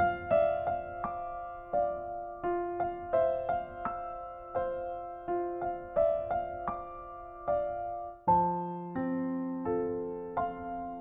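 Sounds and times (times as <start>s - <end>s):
soft piano melody: 0.0s - 11.0s.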